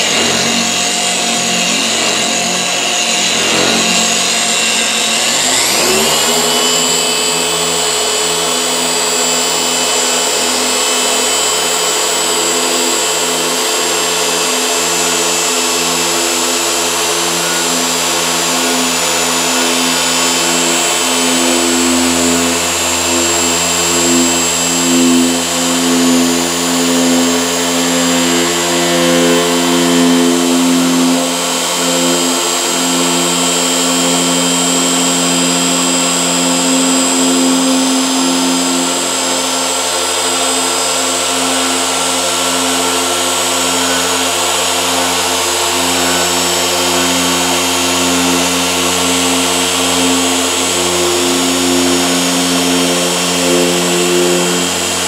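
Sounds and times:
orbital polisher humming: 0:00.0 - 0:55.0.

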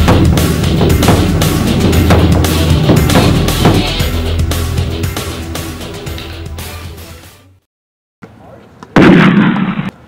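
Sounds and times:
music with steady beat: 0:00.0 - 0:07.4
loud blast sound effect: 0:09.0 - 0:09.9.

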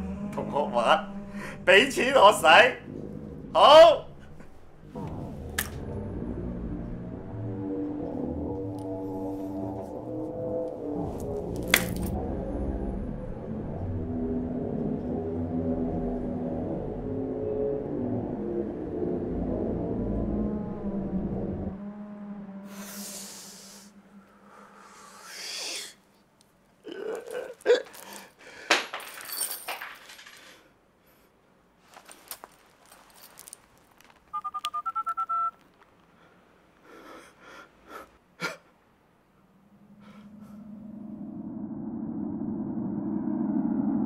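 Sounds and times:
low tense film music: 0:00.0 - 0:25.6, 0:39.4 - 0:44.0.

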